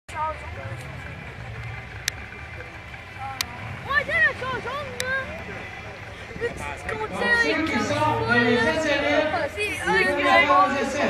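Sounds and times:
car engine idling: 0:00.1 - 0:11.0
sharp clicks: 0:04.9 - 0:05.5.

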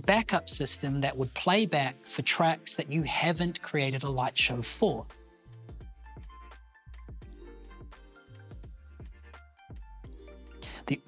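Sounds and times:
man's voice: 0:00.0 - 0:05.1, 0:10.6 - 0:11.0.

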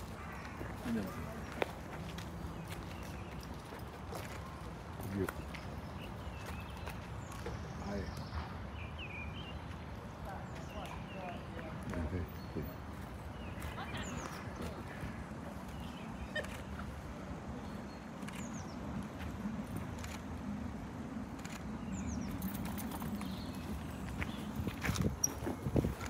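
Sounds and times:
hooves clopping on tarmac: 0:00.0 - 0:08.3.

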